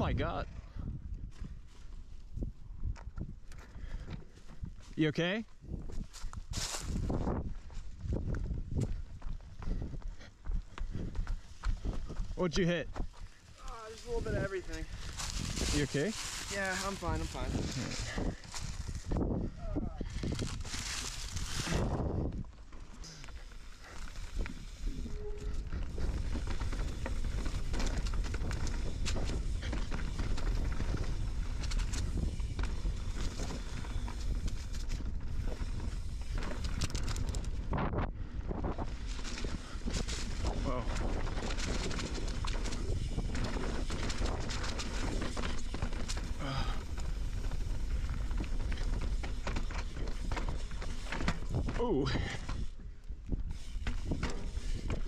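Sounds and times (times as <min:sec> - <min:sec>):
bike tyre noise on dirt: 0:00.0 - 0:55.0
bike knocking and rattling: 0:20.0 - 0:55.0.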